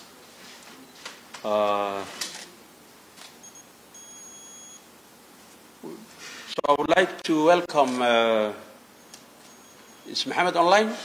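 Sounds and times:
high-pitched electronic beep: 3.4s - 4.8s.

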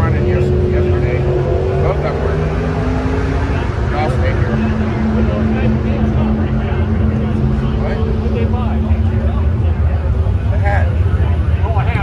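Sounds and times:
indistinct voices: 0.0s - 12.0s
loud low rumble: 0.0s - 12.0s.

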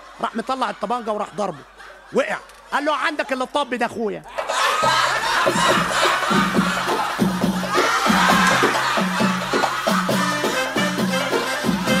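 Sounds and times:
band music with quick drum beat: 4.8s - 12.0s.

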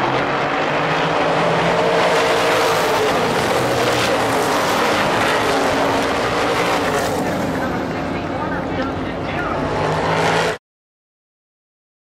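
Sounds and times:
race car engines passing: 0.0s - 10.6s.

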